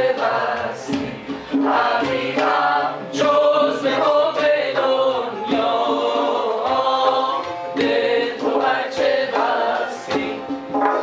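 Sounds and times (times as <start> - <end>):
group of voices singing: 0.0 - 11.0
plucked lutes: 0.0 - 11.0
goblet drum strokes: 4.8 - 11.0.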